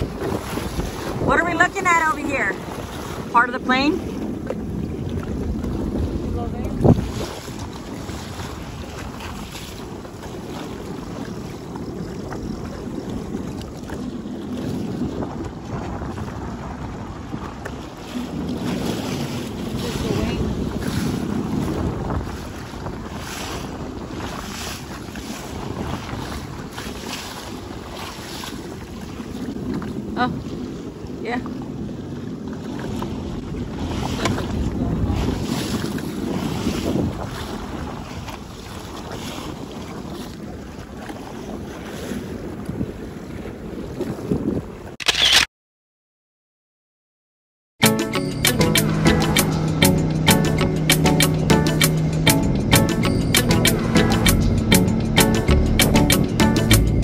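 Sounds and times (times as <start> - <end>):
waves slapping against hull: 0.0 - 45.0, 47.8 - 57.0
wind buffeting microphone: 0.0 - 45.0
jet ski idling: 47.8 - 57.0.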